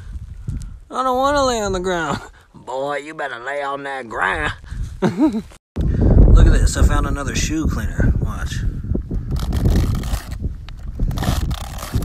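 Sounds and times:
sneaker scraping cactus spines: 0:09.3 - 0:12.0.

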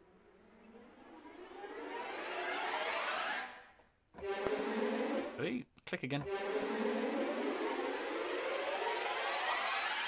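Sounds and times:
orchestral strings tremolo riser: 0:00.0 - 0:05.6, 0:06.2 - 0:10.0.

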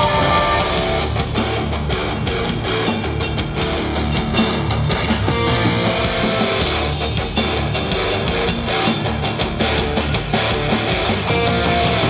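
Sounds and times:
drum kit beat: 0:00.0 - 0:12.0
electric guitar: 0:00.0 - 0:12.0.

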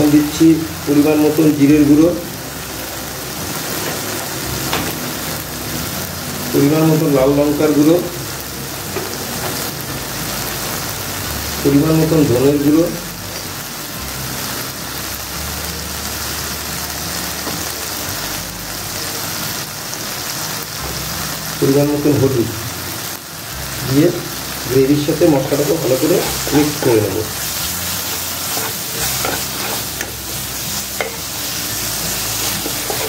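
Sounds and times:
onion and tomato sizzling in oil: 0:00.0 - 0:33.0
person speaking: 0:24.0 - 0:27.4.

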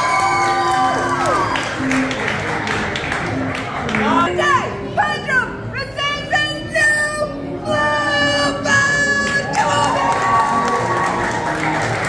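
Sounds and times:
crowd cheering: 0:00.0 - 0:02.6, 0:09.4 - 0:12.0
upbeat background music: 0:00.0 - 0:12.0.

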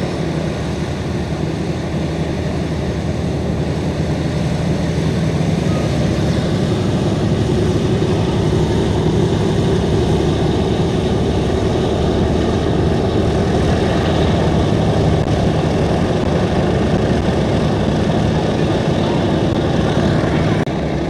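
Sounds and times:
propeller aircraft engines rumbling: 0:00.0 - 0:21.0.

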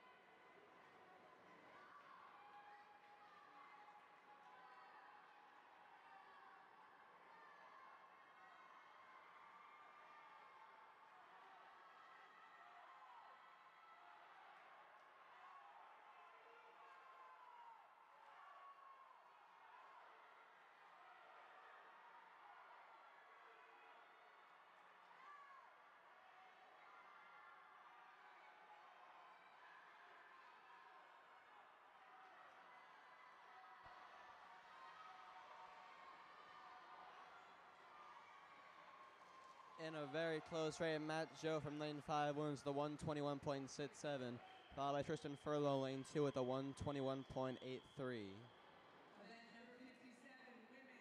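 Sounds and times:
faint spectators cheering: 0:00.0 - 0:49.3
low crowd hubbub: 0:00.0 - 0:50.0.

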